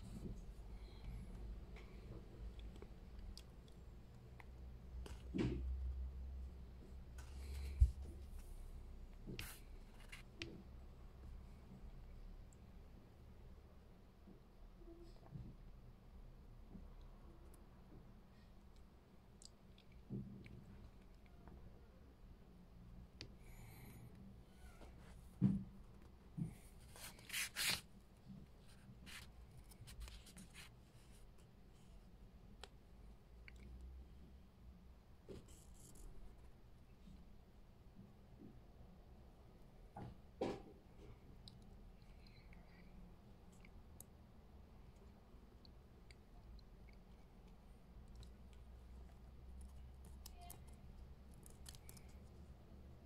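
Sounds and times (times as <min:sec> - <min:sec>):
fingers rubbing on paper pages: 0:26.8 - 0:27.8
papery rustles: 0:26.9 - 0:27.9.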